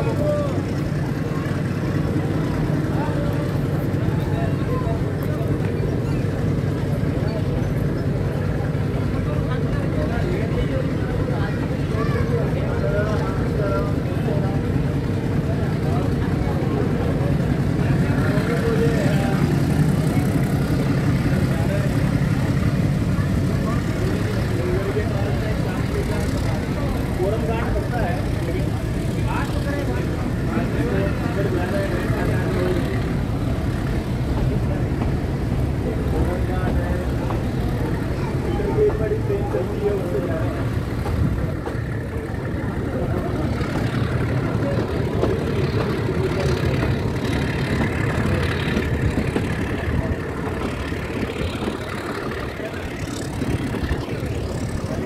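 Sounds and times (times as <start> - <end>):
diesel locomotive engine accelerating: 0.0 - 55.0
train coaches rumbling: 0.0 - 55.0.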